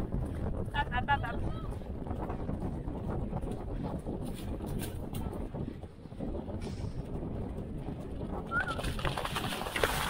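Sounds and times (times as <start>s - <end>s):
wind rushing over microphone: 0.0s - 10.0s
pony galloping on turf: 7.1s - 10.0s
splashing water: 8.8s - 10.0s.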